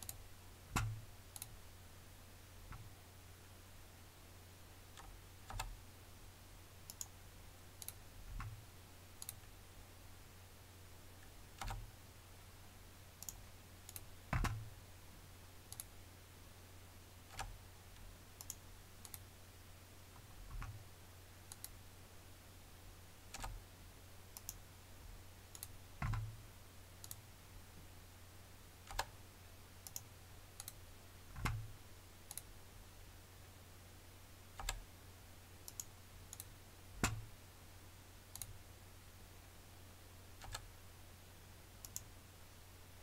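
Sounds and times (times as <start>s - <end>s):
computer mouse and keyboard clicks: 0.0s - 1.6s, 4.9s - 5.8s, 6.9s - 7.2s, 7.8s - 8.6s, 9.2s - 9.5s, 11.6s - 11.9s, 13.2s - 14.7s, 17.3s - 17.6s, 18.4s - 19.2s, 20.2s - 20.8s, 21.5s - 21.8s, 23.3s - 23.6s, 25.5s - 26.3s, 28.8s - 29.2s, 29.8s - 31.7s, 32.3s - 32.5s, 34.6s - 34.8s, 35.6s - 37.2s, 38.3s - 38.6s, 40.4s - 40.7s, 41.8s - 42.1s.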